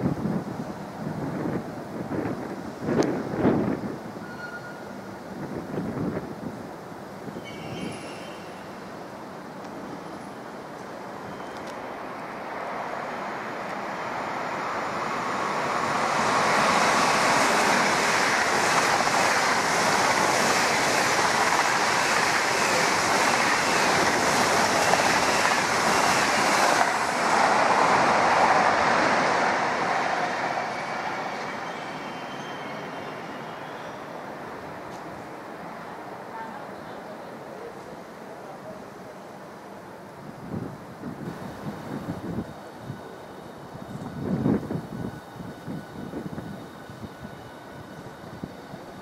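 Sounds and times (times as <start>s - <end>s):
high-speed train passing: 0.0s - 49.0s.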